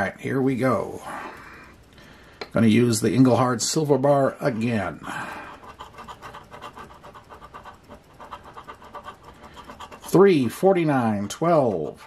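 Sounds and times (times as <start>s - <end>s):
metal bar scratching lottery ticket: 5.5s - 11.9s.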